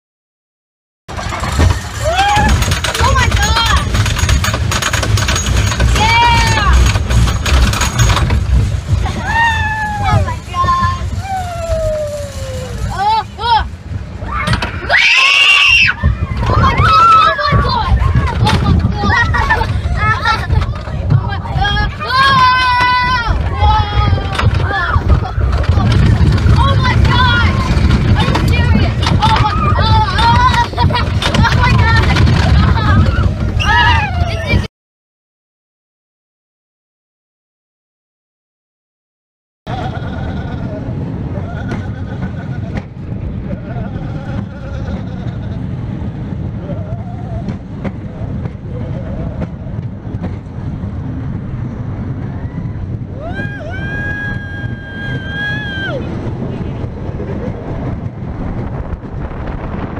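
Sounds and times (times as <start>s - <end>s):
roller coaster rumbling on track: 1.1s - 34.7s, 39.7s - 59.9s
riders yelling: 53.2s - 56.1s.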